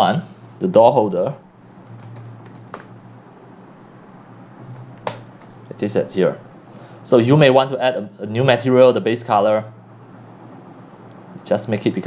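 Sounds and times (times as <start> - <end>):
typing on computer keyboard: 1.8 - 3.0.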